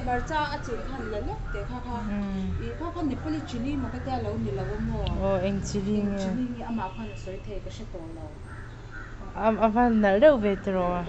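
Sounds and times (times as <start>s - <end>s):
crow cawing: 0.6s - 5.0s, 8.4s - 9.6s.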